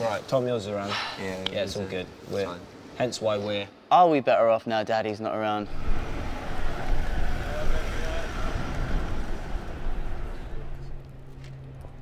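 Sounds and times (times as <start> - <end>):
van driving past: 5.7 - 12.0.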